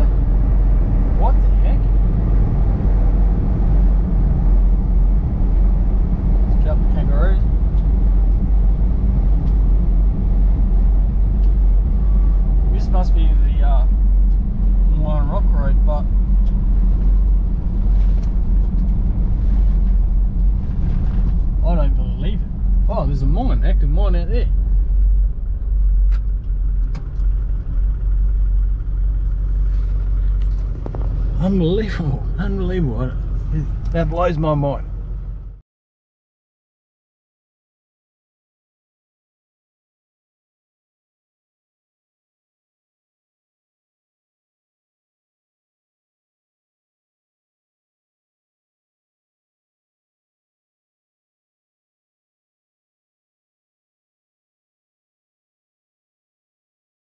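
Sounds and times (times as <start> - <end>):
engine and tyre drone: 0.0 - 35.6.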